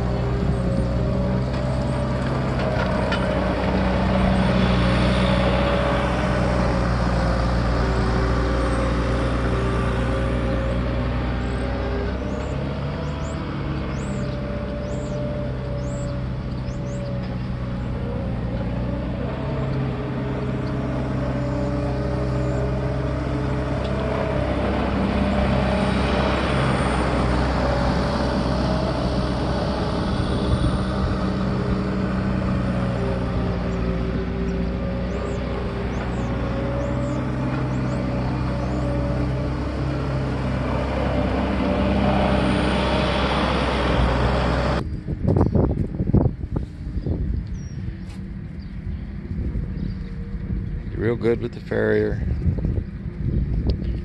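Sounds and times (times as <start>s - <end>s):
loader diesel engine running: 0.0s - 54.0s.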